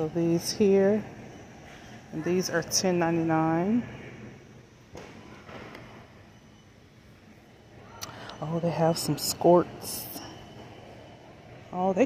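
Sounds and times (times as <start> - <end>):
warehouse store background noise: 0.0 - 12.0.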